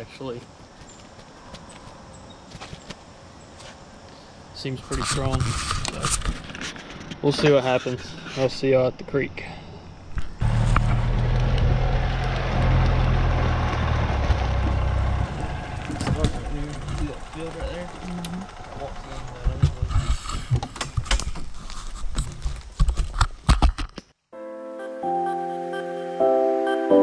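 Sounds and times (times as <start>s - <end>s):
golf cart motor drone: 10.4s - 20.0s
sharp knocks and rattles: 10.4s - 24.0s
music: 24.3s - 27.0s.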